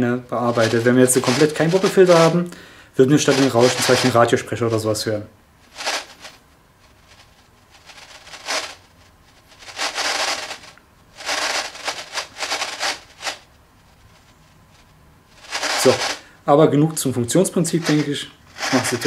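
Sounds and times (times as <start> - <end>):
radio static bursts: 0.3 - 2.4, 3.1 - 4.3, 5.7 - 6.4, 7.8 - 8.8, 9.6 - 13.4, 14.1 - 16.2, 17.7 - 19.0.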